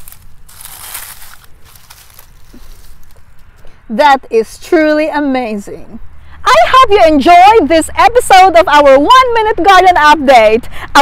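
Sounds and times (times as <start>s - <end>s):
dry grass rustling and crackling: 0.0s - 3.7s.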